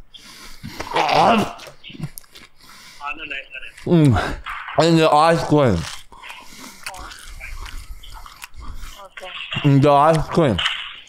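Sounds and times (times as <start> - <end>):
crunchy chewing of lettuce: 5.3 - 9.1.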